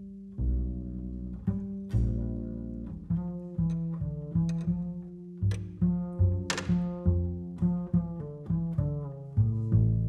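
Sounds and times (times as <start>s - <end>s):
plucked double bass: 0.0s - 10.0s.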